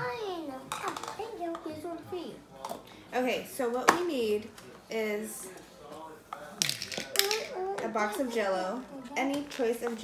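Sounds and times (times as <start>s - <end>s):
child talking: 0.0s - 2.4s
plastic cups clicking and rustling: 0.7s - 1.7s, 6.4s - 8.2s, 9.1s - 10.0s.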